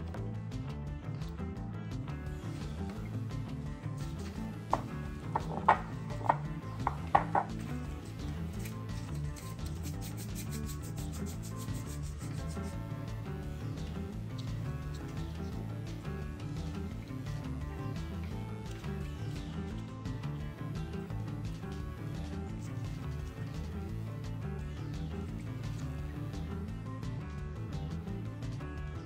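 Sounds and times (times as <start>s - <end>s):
quiet background music: 0.0s - 29.0s
gloved hands working sticky dough: 4.1s - 12.7s.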